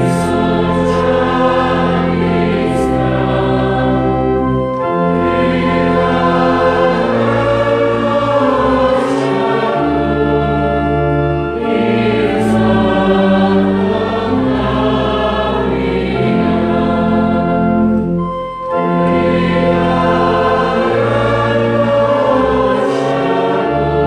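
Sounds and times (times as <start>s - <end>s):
choir singing slow chords: 0.0s - 24.0s.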